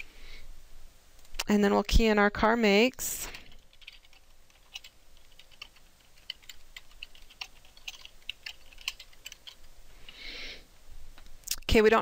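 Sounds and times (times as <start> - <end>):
soft hiss: 0.0 - 1.7, 9.0 - 12.0
typing on computer keyboard: 3.3 - 9.7.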